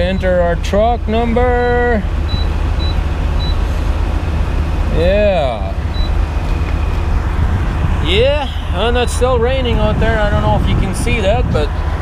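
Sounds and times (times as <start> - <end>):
diesel truck engine idling: 0.0 - 12.0.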